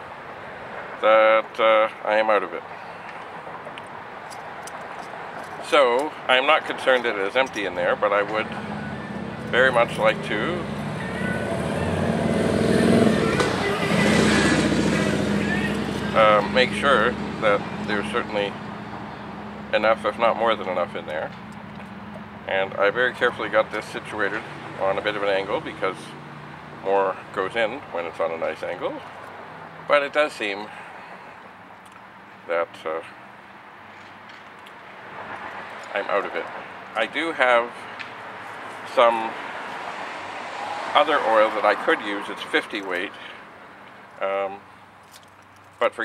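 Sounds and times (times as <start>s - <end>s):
motor vehicle engine hum: 2.7s - 32.5s, 33.1s - 45.8s.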